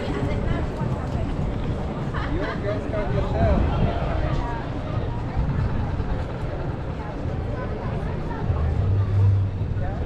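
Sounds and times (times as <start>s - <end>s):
faint voices of passers-by: 0.0s - 10.0s
low traffic rumble: 0.0s - 10.0s.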